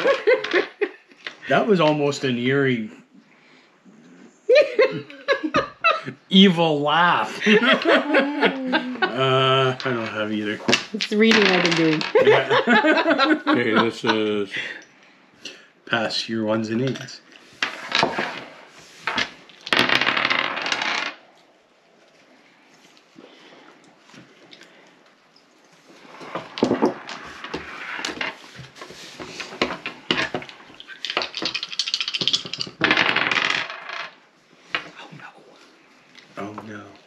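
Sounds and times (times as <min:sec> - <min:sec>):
dice clattering on wooden table: 0:09.8 - 0:12.2, 0:17.6 - 0:21.2, 0:26.1 - 0:34.9.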